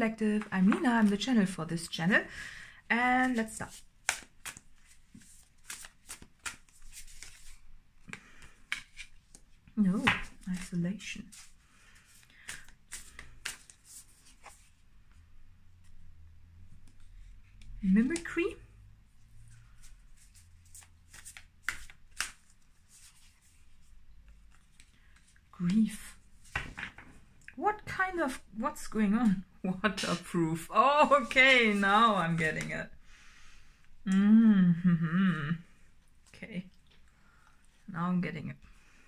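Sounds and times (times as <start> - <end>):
cards being shuffled: 3.2 - 14.8, 19.5 - 27.1.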